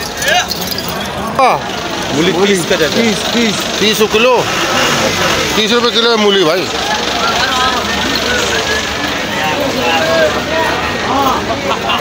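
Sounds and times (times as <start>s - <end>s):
overlapping background voices: 0.0s - 12.0s.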